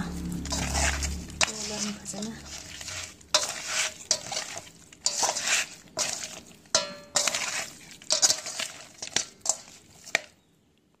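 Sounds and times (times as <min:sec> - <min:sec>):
wet rubbing and squelching: 0:00.0 - 0:10.5
scraping against metal bowl: 0:00.3 - 0:10.4.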